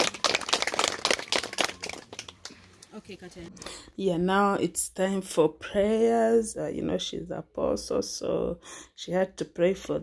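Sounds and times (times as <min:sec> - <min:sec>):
people clapping: 0:00.0 - 0:03.0.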